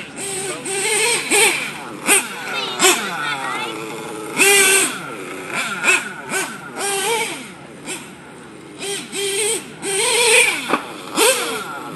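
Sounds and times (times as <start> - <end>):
model engine revving in bursts: 0.0 - 11.9.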